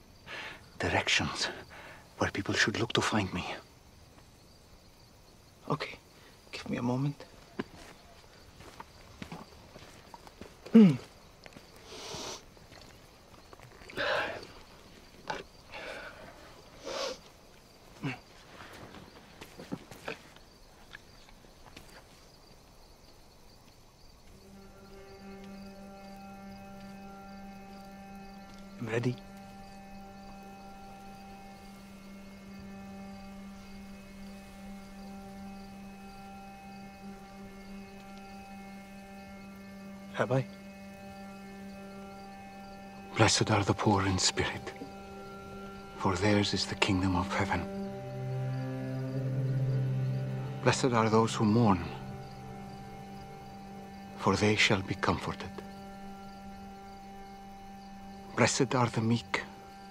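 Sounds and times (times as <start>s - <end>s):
man breathing while drinking: 15.7s - 17.3s
electrical hum: 23.3s - 59.9s.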